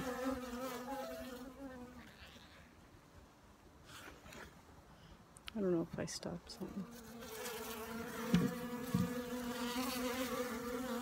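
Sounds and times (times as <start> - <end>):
honeybee buzzing: 0.0 - 2.6, 6.7 - 11.0.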